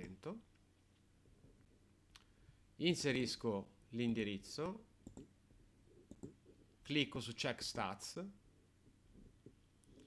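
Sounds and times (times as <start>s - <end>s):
computer mouse clicking: 4.6s - 5.4s, 6.1s - 6.4s.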